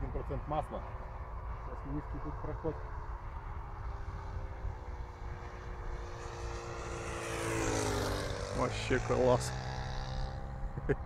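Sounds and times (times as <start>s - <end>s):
model airplane engine flyby: 0.0s - 11.0s.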